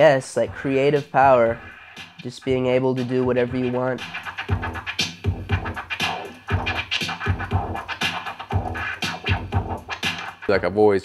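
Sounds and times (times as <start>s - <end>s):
turntable scratching: 0.0s - 11.0s
beat with low thump: 0.4s - 10.5s.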